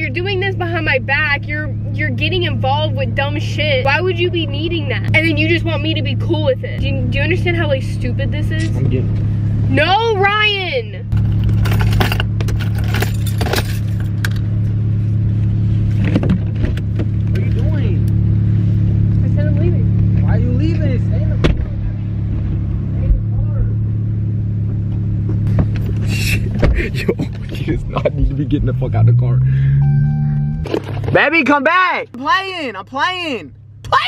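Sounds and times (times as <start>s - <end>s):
car engine idling: 0.0s - 34.0s.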